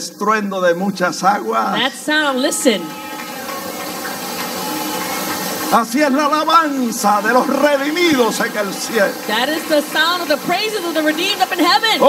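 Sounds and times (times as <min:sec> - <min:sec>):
waterfall rushing: 0:01.7 - 0:12.0.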